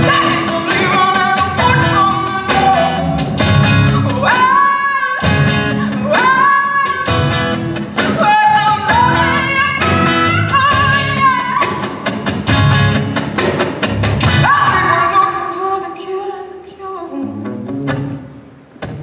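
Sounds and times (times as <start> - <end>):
bass guitar: 1.4 - 4.3, 5.2 - 6.1, 7.1 - 8.1, 12.2 - 15.0.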